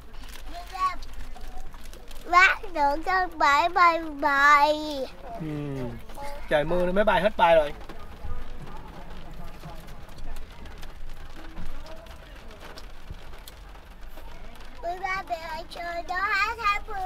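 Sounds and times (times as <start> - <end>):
rain on a car roof: 0.0 - 17.0
child's high voice: 0.5 - 1.1, 2.3 - 5.4, 6.1 - 6.5, 14.8 - 17.0
quiet voices: 4.8 - 6.5.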